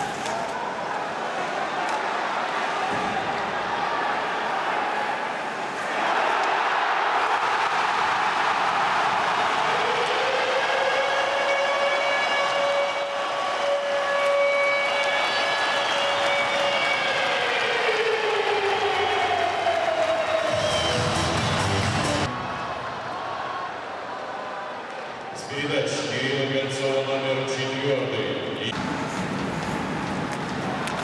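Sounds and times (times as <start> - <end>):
arena crowd roaring: 0.0 - 25.5
siren: 9.8 - 18.1.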